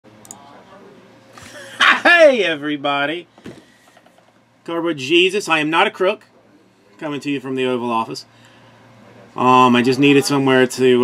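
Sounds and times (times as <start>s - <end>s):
faint room hum: 0.1s - 11.0s
man shouting a greeting: 1.8s - 2.6s.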